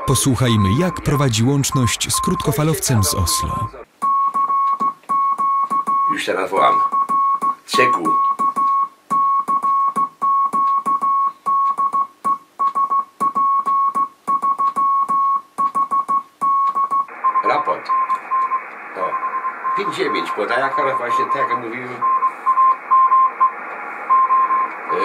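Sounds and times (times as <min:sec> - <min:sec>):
faint morse signal: 0:00.0 - 0:03.8, 0:17.1 - 0:25.0
shortwave receiver hiss: 0:00.0 - 0:03.9, 0:17.1 - 0:25.0
morse code tone: 0:00.0 - 0:06.2, 0:15.9 - 0:25.0.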